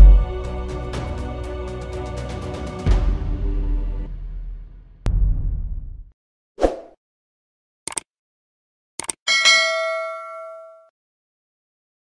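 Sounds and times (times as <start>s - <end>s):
bell ding: 9.3s - 10.9s.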